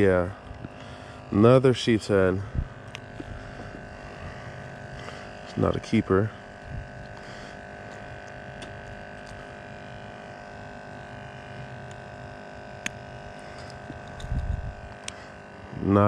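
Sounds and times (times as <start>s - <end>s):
steady mechanical hum: 0.0s - 16.0s.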